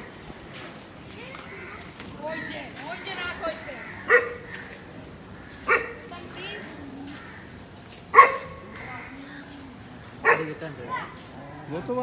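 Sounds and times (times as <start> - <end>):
dog barking: 4.1 - 4.5, 5.7 - 6.1, 8.1 - 8.7, 10.2 - 10.7.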